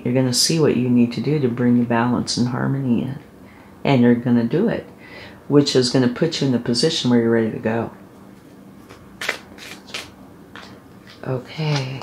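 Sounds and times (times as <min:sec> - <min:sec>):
cards being shuffled: 0:08.4 - 0:12.0.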